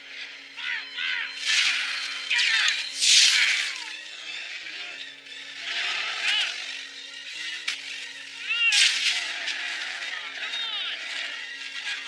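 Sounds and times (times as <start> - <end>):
orchestral music with low notes: 0.0 - 12.0.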